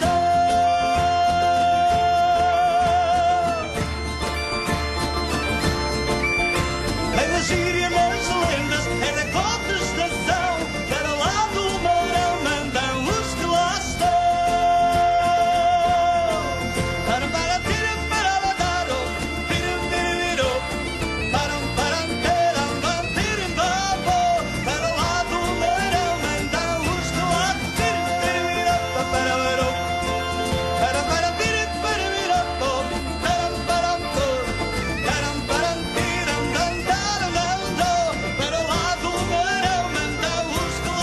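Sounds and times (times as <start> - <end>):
man singing: 0.0 - 4.1, 6.9 - 41.0
folk band accompanying: 0.0 - 41.0
bagpipe melody over drone: 2.6 - 14.0, 16.2 - 41.0.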